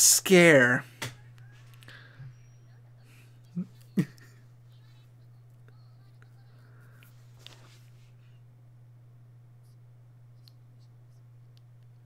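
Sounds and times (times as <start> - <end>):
man chuckling: 3.5 - 4.5.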